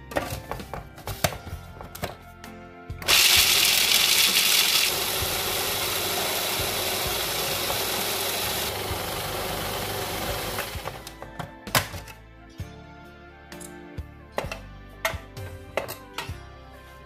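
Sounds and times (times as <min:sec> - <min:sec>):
food processor grinding: 0:03.0 - 0:11.1.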